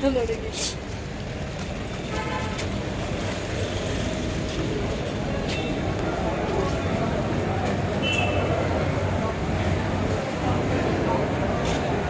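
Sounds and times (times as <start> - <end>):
road traffic rumble: 0.0 - 12.0
faint indistinct voices: 3.2 - 12.0.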